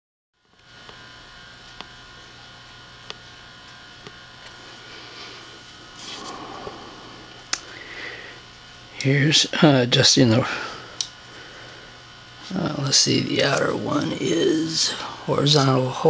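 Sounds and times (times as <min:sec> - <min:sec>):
television buzzing mains hum: 0:00.4 - 0:16.0.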